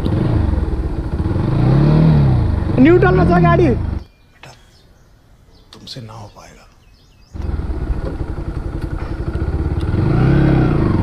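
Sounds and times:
motorcycle engine revving: 0.0s - 4.0s, 7.3s - 11.0s.

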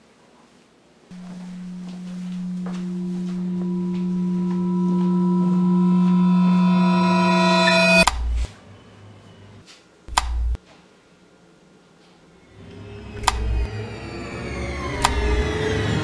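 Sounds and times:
suspense film score drone: 1.1s - 8.2s, 12.5s - 16.0s.

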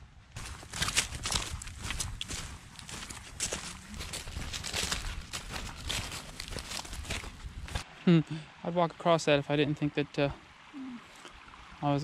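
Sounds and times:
footsteps crunching wet leaves: 0.4s - 7.9s.

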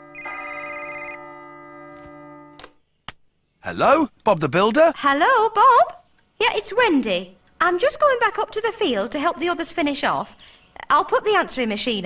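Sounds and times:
telephone ringing: 0.0s - 2.6s.

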